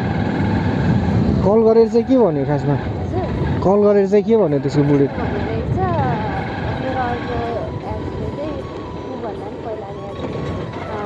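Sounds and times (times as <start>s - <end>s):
motorcycle engine rumble: 0.0s - 11.0s
wind noise: 0.0s - 11.0s.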